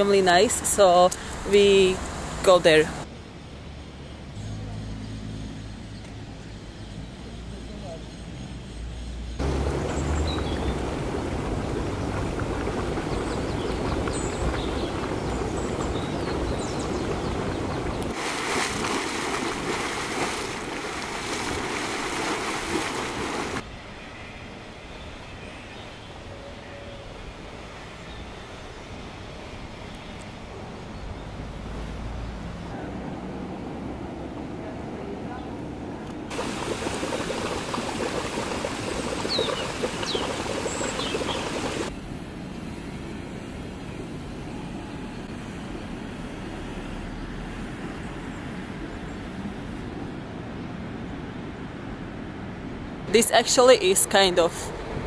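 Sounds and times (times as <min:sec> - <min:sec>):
hot springs bubbling and hissing: 0:00.0 - 0:03.0, 0:09.4 - 0:23.6, 0:36.3 - 0:41.9.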